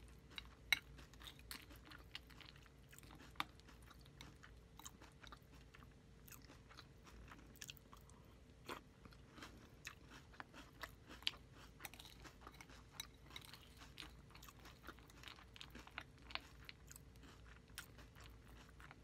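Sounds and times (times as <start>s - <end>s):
chewing crunchy cereal: 0.0s - 19.0s.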